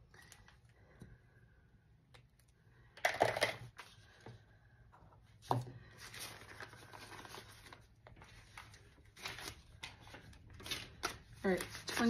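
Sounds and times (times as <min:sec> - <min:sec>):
paper money rustling: 0:06.0 - 0:12.0.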